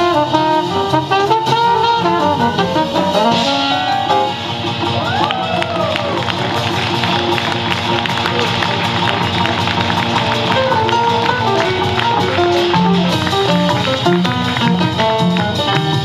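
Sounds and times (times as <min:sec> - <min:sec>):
piano: 0:00.0 - 0:16.0
upright double bass: 0:00.0 - 0:16.0.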